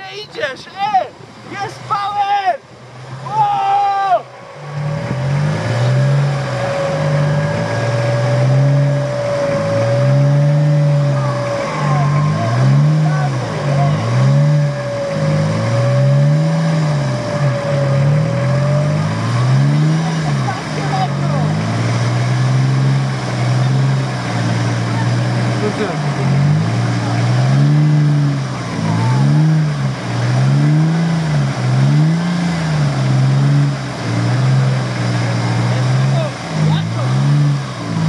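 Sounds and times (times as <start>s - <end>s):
steady whine: 0.0s - 31.9s
off-road engine revving: 0.0s - 38.0s.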